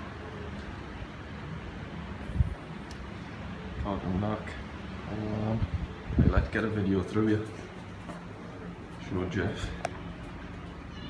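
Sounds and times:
wind blowing across microphone: 0:05.4 - 0:06.8.

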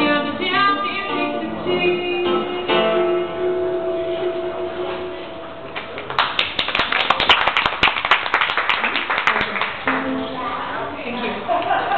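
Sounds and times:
audience clapping: 0:05.8 - 0:10.2.

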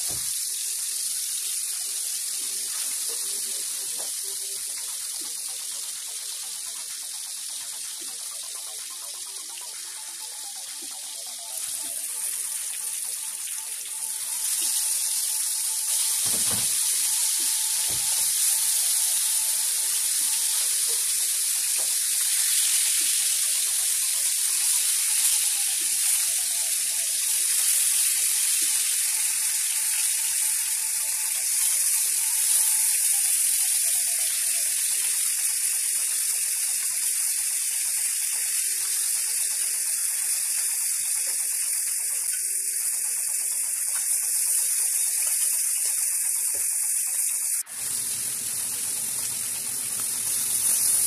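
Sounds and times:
onions sizzling in hot oil: 0:00.0 - 0:51.0.

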